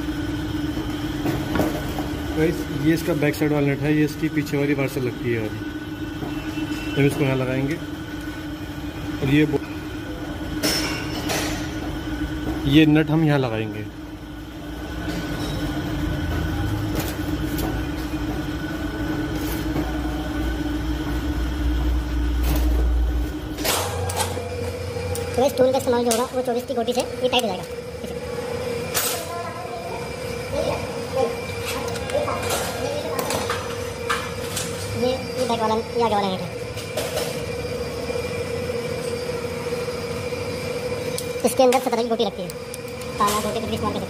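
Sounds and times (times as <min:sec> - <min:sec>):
steady machine hum: 0:00.0 - 0:44.0.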